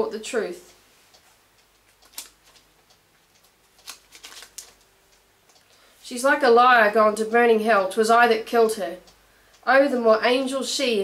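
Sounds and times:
book pages rustling: 3.6s - 4.9s.

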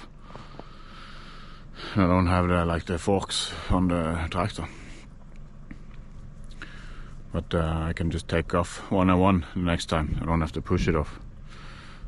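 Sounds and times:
man breathing in: 0.1s - 2.0s, 6.5s - 7.2s, 11.4s - 12.0s.

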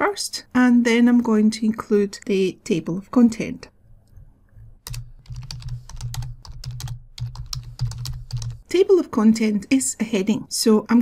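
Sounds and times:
typing on computer keyboard: 4.8s - 8.6s.

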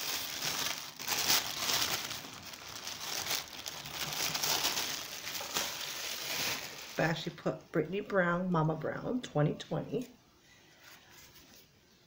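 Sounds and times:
wrapping paper crinkling: 0.0s - 7.3s.

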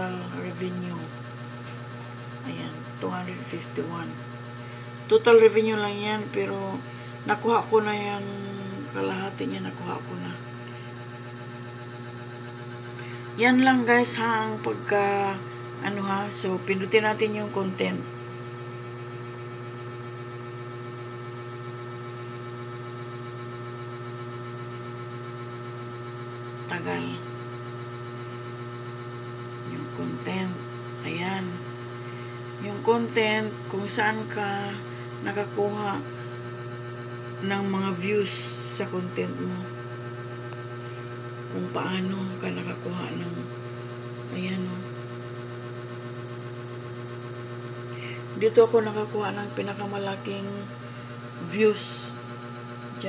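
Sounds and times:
electrical hum: 0.0s - 53.0s.

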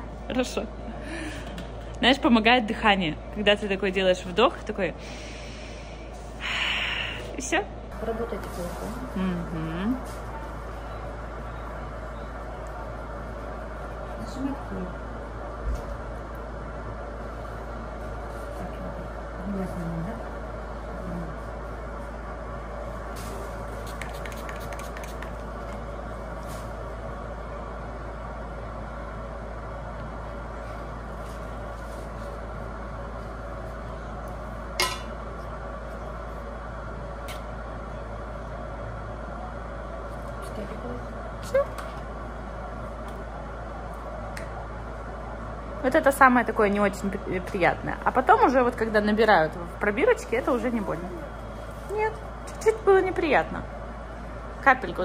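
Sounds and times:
steady room hum: 0.0s - 55.0s.

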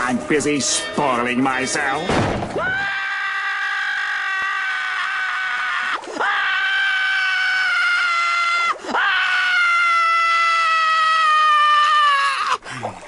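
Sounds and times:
high drawn-out cartoon scream: 2.6s - 12.6s.

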